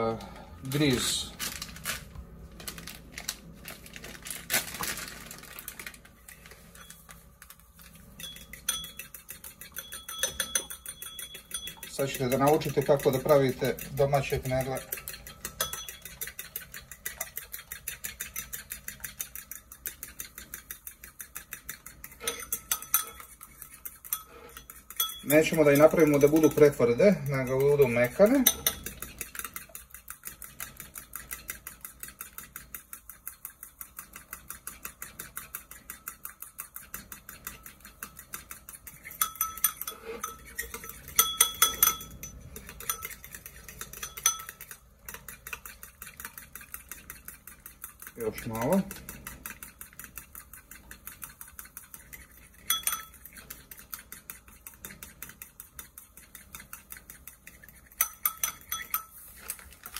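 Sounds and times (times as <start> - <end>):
spoon beating mixture in bowl: 0.0 - 59.9
spoon clinking against bowl: 8.2 - 32.2, 34.9 - 59.6.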